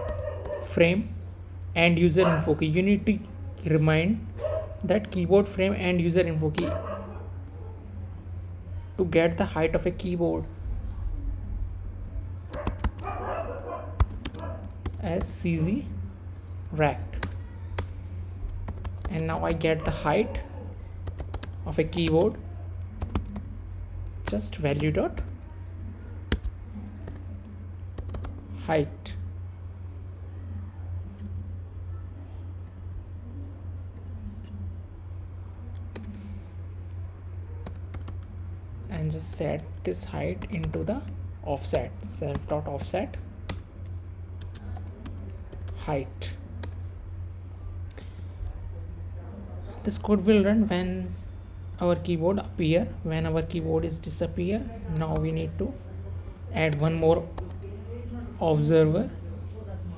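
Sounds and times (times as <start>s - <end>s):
low electrical hum: 0.0s - 59.9s
computer keyboard keystrokes: 12.5s - 13.1s, 18.6s - 19.6s, 21.0s - 22.4s, 23.0s - 23.5s, 27.9s - 28.4s, 37.6s - 38.3s.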